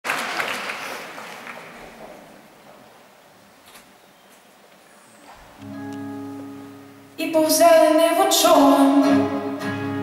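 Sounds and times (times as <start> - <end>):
audience applause: 0.0 - 2.4.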